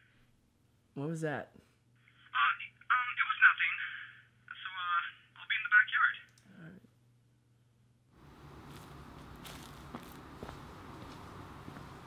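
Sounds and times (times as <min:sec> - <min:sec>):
voice speaking over telephone: 0:02.2 - 0:06.4.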